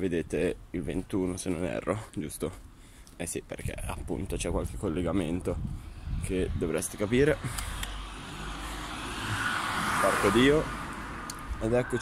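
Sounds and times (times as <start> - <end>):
passing vehicle rushing: 6.8 - 12.0.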